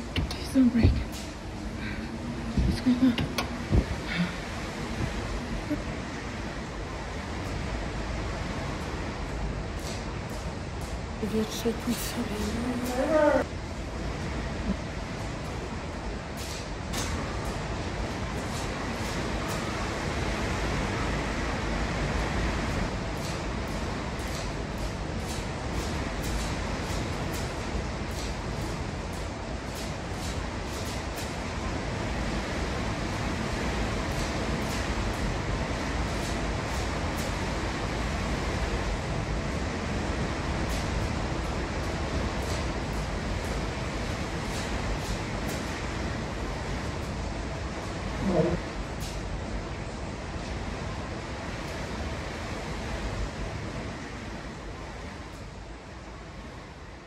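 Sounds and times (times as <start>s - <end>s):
knocks and rattles of building: 0.0s - 56.1s.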